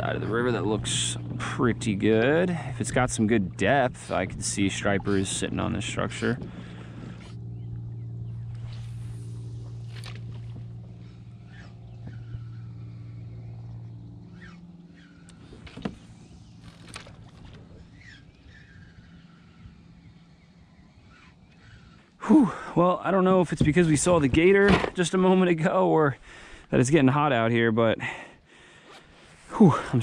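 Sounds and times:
low engine hum: 0.0 - 28.0.

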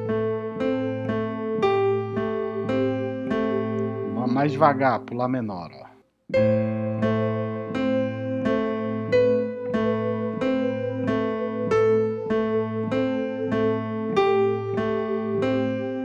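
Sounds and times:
electronic keyboard broken chords: 0.0 - 16.0.

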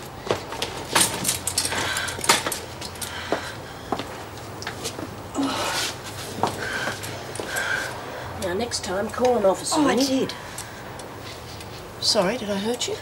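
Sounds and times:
footsteps: 0.0 - 7.8.

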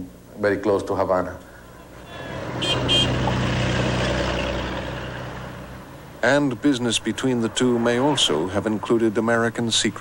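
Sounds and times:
vehicle passing: 1.7 - 10.0.

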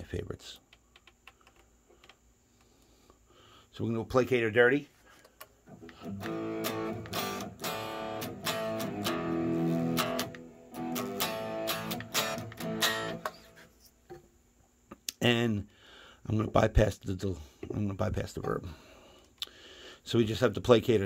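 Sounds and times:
distorted electric guitar chords: 5.7 - 13.6.

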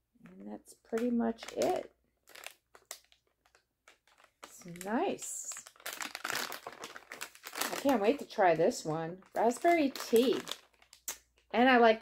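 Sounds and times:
package crinkling: 0.3 - 11.6.

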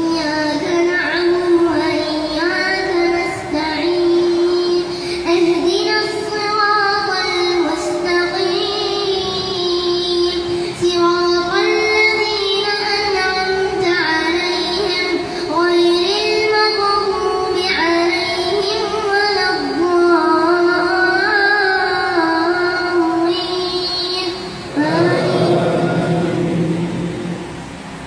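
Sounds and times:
child chanting through a microphone: 0.0 - 27.5.

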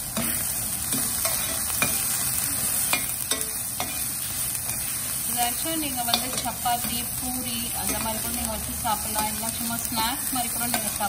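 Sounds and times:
onions sizzling in hot oil: 0.0 - 11.0
steel spoon scraping a pan: 0.1 - 11.0.

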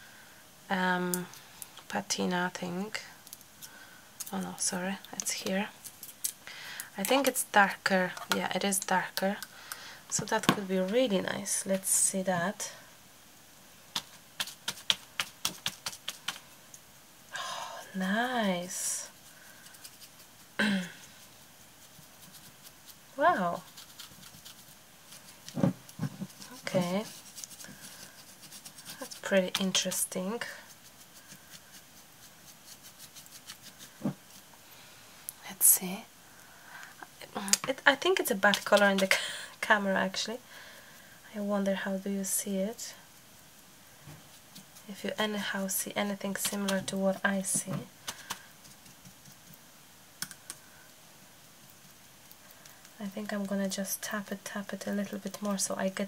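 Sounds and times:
handling noise at a table: 32.8 - 34.5.

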